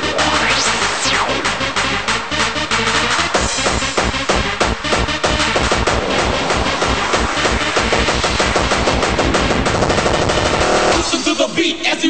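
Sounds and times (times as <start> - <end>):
rapid kick drum roll: 1.9 - 11.1.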